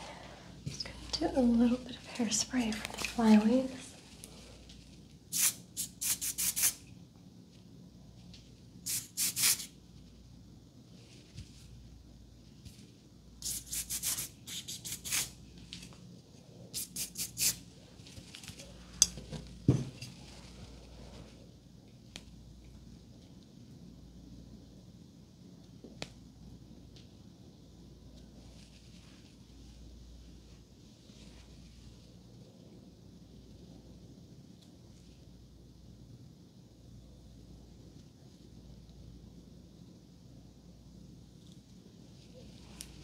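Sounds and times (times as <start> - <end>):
hairspray spraying in hissing puffs: 5.3 - 6.8, 8.8 - 9.7, 13.4 - 15.4, 16.7 - 17.6.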